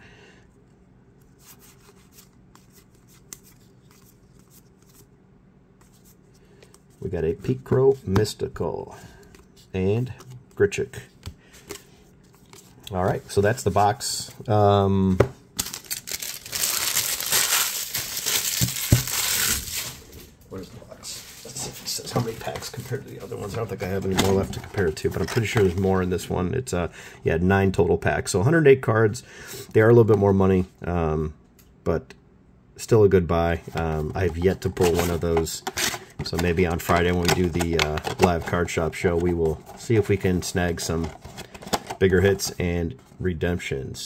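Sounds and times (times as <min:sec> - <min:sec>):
foil wrappers crinkling: 0:15.6 - 0:20.2.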